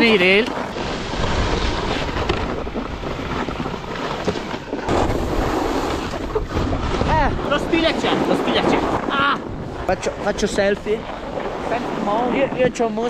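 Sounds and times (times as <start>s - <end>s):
snowboards sliding over snow: 0.0s - 13.0s
wind buffeting microphone: 0.0s - 13.0s.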